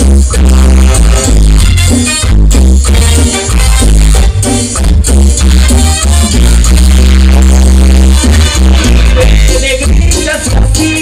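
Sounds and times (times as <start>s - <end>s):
long low bass note: 0.0s - 2.8s, 6.3s - 9.4s
latin dance band playing: 0.0s - 11.0s.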